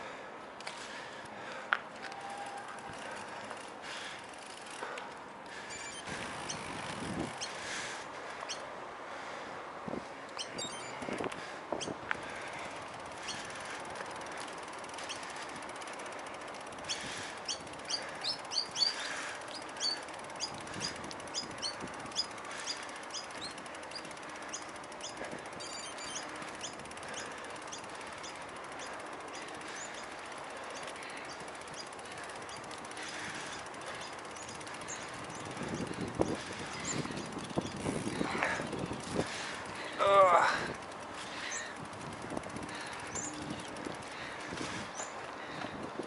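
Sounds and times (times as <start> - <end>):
bike rattling and crunching: 0.0 - 8.8, 10.2 - 46.0
bicycle tyres hissing: 0.0 - 46.0
wind: 0.0 - 46.0
birds chirping: 5.5 - 8.8, 10.4 - 15.8, 16.7 - 40.3, 41.2 - 41.9, 42.6 - 46.0.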